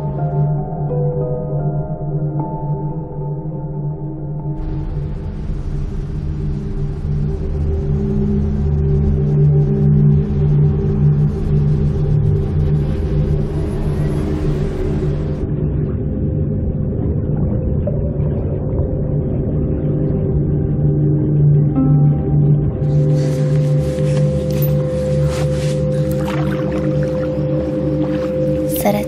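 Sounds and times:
low sustained music drone: 0.0s - 29.0s.

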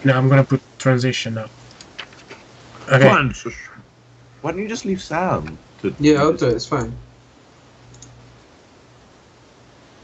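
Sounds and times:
low microphone hum: 0.0s - 10.0s
room hiss: 0.0s - 10.0s
faint click: 7.9s - 8.2s.

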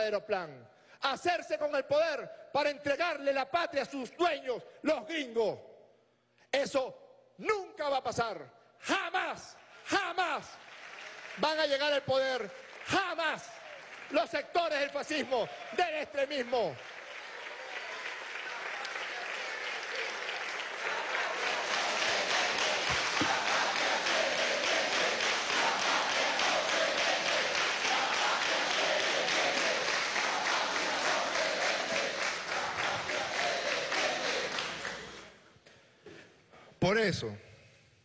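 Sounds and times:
large crowd applauding: 9.9s - 35.3s.

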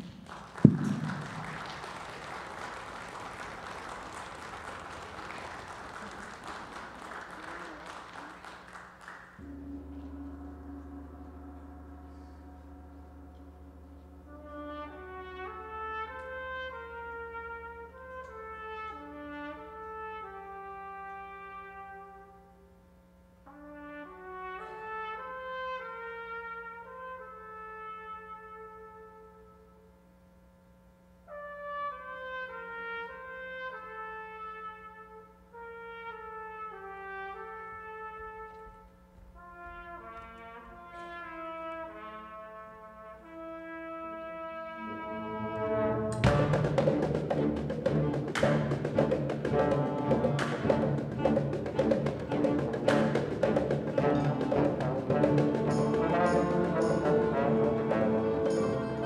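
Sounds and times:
soft brass music: 0.0s - 30.3s, 31.1s - 59.0s.

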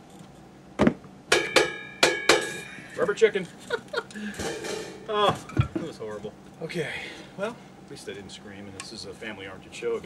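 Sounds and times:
cymbal struck with drumstick: 1.3s - 2.7s, 4.4s - 5.1s.

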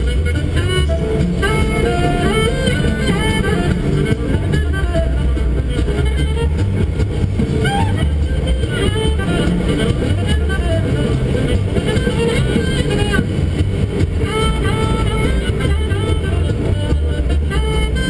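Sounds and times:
jazz on car radio: 0.0s - 18.0s
road and engine rumble: 0.0s - 18.0s.

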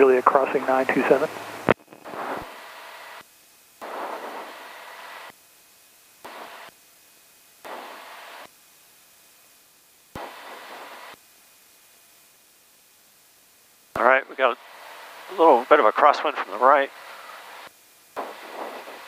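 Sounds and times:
radio static hiss bursts: 0.0s - 9.4s, 10.0s - 12.8s, 13.8s - 19.0s.

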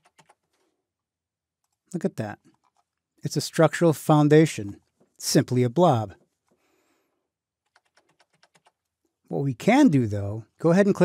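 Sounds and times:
computer keyboard keys clicking: 0.0s - 0.5s, 7.6s - 8.9s.

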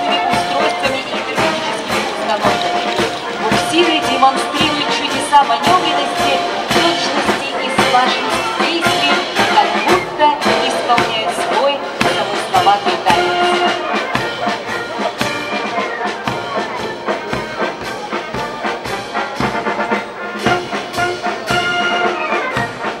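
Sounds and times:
steady drum beat: 0.0s - 23.0s
trumpets and trombones: 0.0s - 23.0s.

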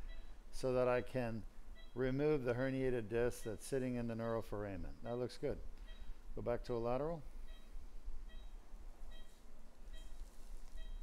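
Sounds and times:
patient monitor beeping: 0.0s - 5.2s, 5.8s - 11.0s
low electrical hum: 0.0s - 11.0s.

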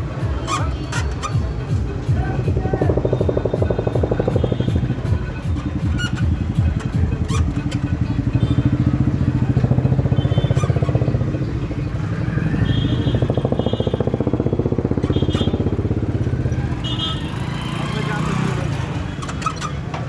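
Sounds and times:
small engine chugging: 1.9s - 16.5s.

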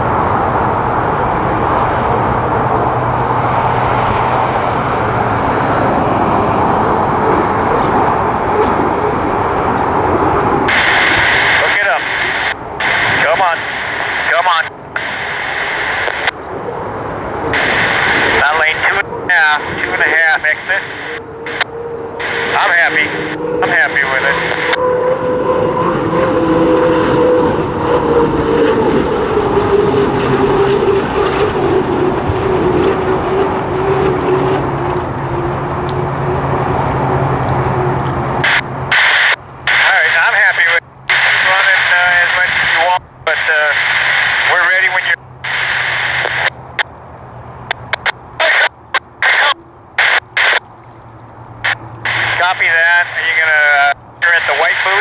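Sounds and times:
turbine engine whining hum: 0.0s - 55.0s.

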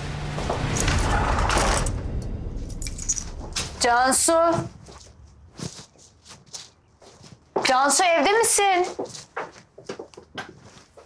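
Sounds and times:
door moving: 0.2s - 4.0s
keys jingling: 2.6s - 3.7s
clothes rustling: 3.8s - 11.0s.

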